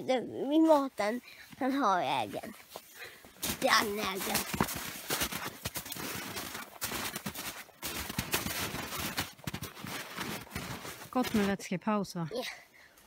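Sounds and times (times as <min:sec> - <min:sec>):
footsteps crunching in snow: 0:00.5 - 0:11.7.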